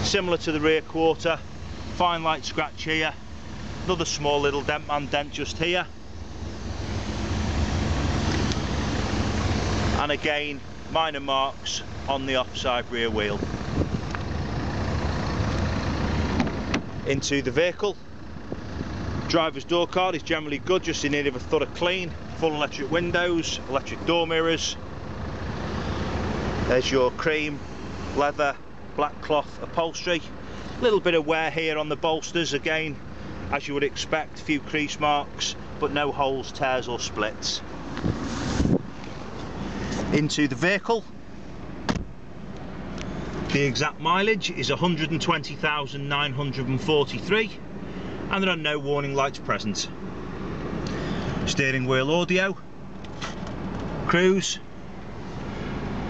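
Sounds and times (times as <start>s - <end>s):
steady low rumble: 0.0s - 35.9s
diesel engine idling: 0.0s - 38.1s, 38.7s - 56.0s
car door handle clicks: 41.9s - 42.2s.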